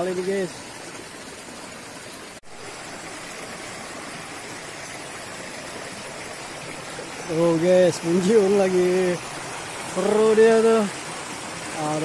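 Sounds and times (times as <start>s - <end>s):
river water rushing over rocks: 0.0s - 12.0s.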